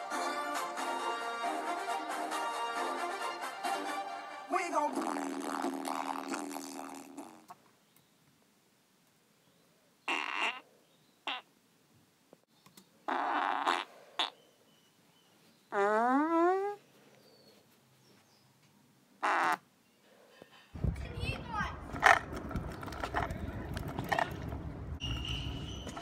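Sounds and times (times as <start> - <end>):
background music: 0.0 - 5.3
raspy fart-like blasts: 4.8 - 7.6, 13.1 - 14.3.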